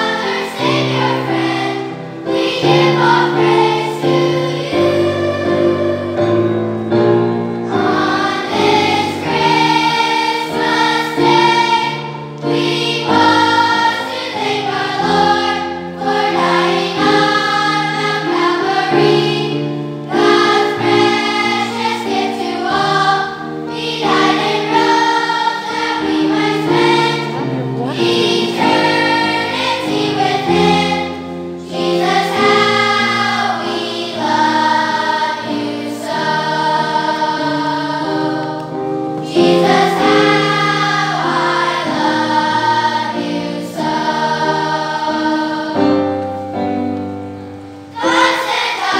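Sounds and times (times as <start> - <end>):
children's choir singing: 0.0 - 48.9.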